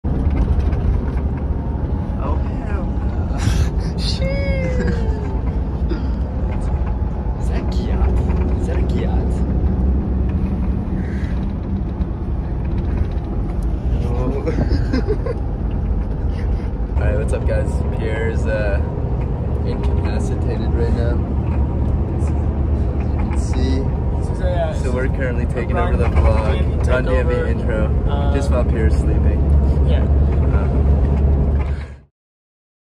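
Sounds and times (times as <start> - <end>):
bus road and engine rumble: 0.0 - 32.1
voices: 2.2 - 9.5, 22.2 - 30.8.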